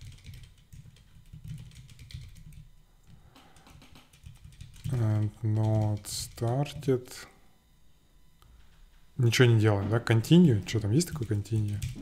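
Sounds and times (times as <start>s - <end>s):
keyboard typing clicks: 0.0s - 5.0s, 11.1s - 12.0s.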